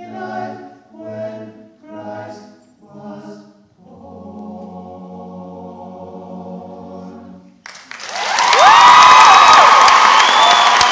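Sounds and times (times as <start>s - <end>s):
audience applause: 7.6s - 10.9s
whoops from crowd: 8.1s - 10.9s.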